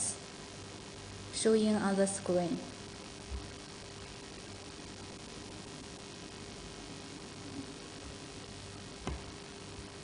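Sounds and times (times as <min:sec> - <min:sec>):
faint constant hum: 0:00.0 - 0:10.0
steady background hiss: 0:00.0 - 0:10.0.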